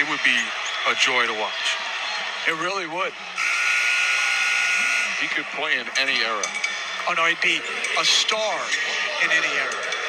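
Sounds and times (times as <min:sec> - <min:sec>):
crowd noise: 0:00.0 - 0:10.0
arena horn steady tone: 0:03.4 - 0:05.2.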